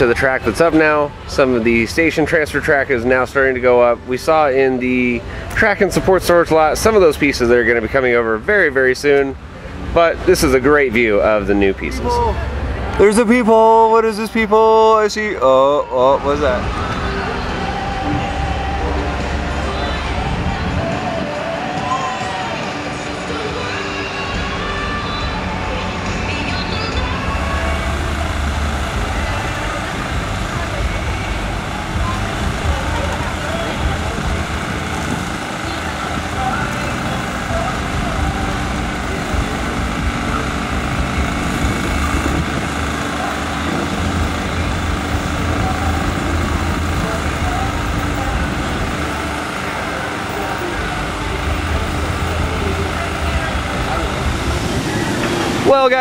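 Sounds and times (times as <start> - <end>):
heavy machinery engines rumbling: 0.0 - 56.0
background voices: 9.3 - 56.0.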